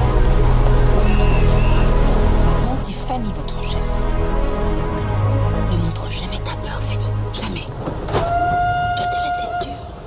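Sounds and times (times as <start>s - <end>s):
background music: 0.0s - 10.0s
steam locomotive whistle: 0.8s - 2.2s, 8.2s - 10.0s.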